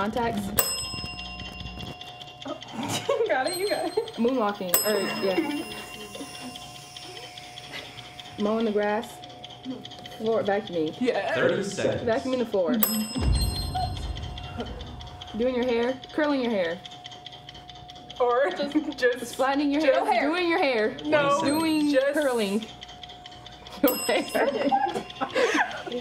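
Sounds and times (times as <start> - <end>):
bell-like chime: 0.0 - 8.8, 12.8 - 15.4, 23.8 - 26.0
laughter: 2.8 - 4.0, 23.7 - 26.0
low rumble: 13.2 - 15.8.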